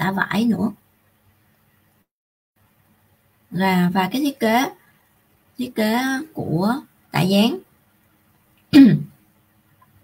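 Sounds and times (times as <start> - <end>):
woman clearing her throat: 8.7 - 9.1.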